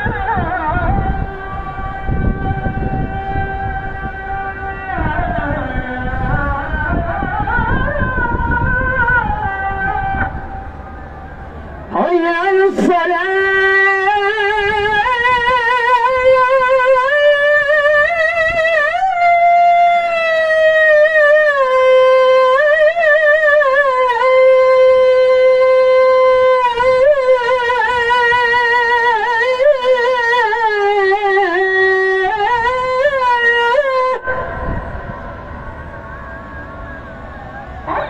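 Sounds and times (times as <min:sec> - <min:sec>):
man singing into a microphone: 0:00.0 - 0:10.4, 0:11.9 - 0:34.4
person chanting long note: 0:00.0 - 0:38.0.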